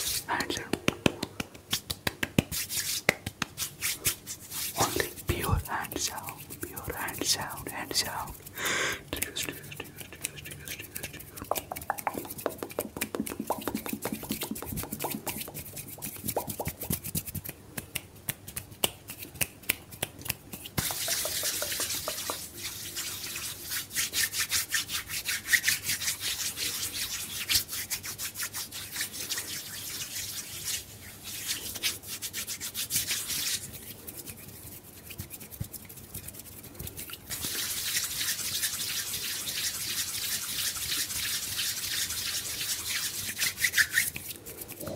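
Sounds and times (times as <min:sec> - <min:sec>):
whispered breathy syllables: 0:00.0 - 0:00.9, 0:04.7 - 0:12.3
palms rubbing together: 0:00.0 - 0:44.9
sharp clicks from hand movements: 0:00.6 - 0:03.6, 0:16.2 - 0:22.4.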